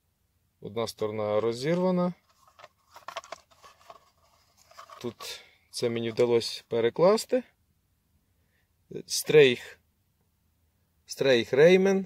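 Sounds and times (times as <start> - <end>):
cardboard box rustling: 2.2 - 5.4.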